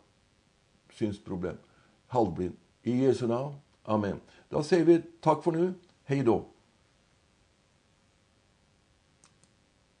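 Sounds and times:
faint clicks: 9.2 - 9.6.

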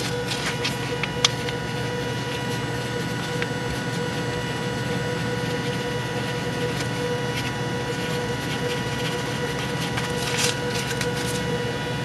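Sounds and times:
steady hum with tones: 0.0 - 12.0.

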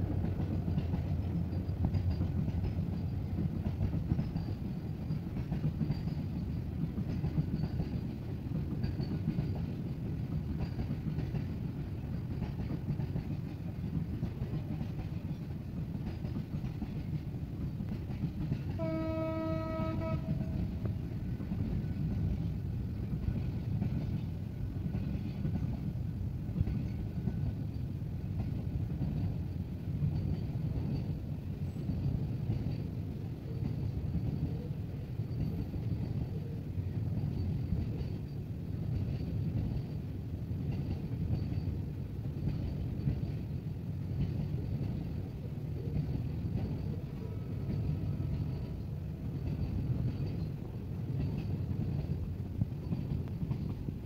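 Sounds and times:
freight train rumbling past: 0.0 - 54.0
train horn: 18.7 - 21.0.

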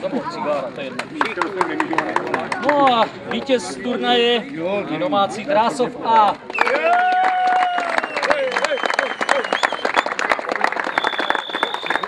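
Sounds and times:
people applauding: 1.0 - 3.6, 6.4 - 12.0
high whistle: 7.9 - 10.2, 10.8 - 12.0.

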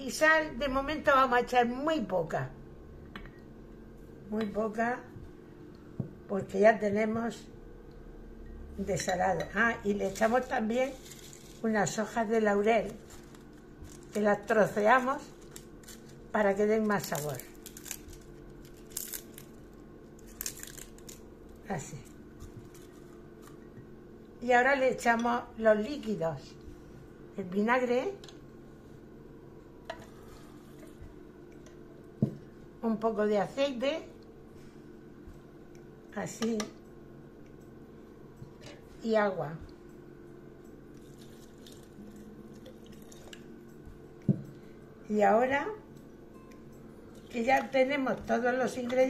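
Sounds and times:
low background hum: 0.0 - 49.0
leaves being torn and crumbled: 10.1 - 11.7, 12.9 - 14.3, 15.2 - 21.7, 40.9 - 42.2.

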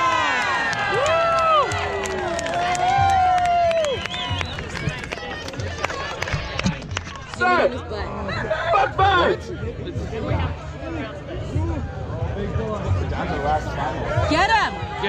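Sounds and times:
voices whooping: 0.0 - 5.1
crowd cheering and shouting: 0.0 - 9.4.

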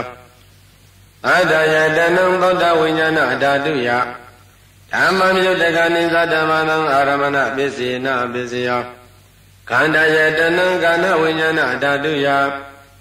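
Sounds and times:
monk chanting: 0.0 - 0.4, 1.2 - 9.0, 9.6 - 13.0.

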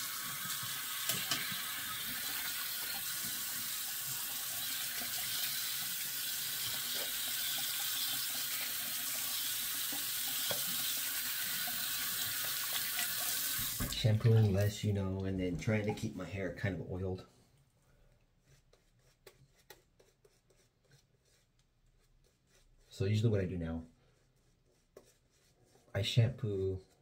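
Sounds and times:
sink faucet running: 0.0 - 14.7.

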